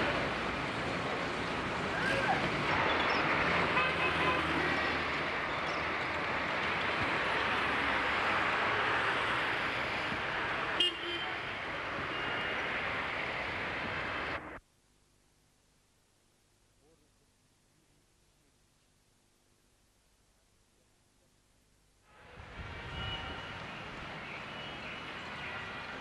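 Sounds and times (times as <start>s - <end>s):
street traffic noise: 0.0s - 14.6s, 21.8s - 26.0s.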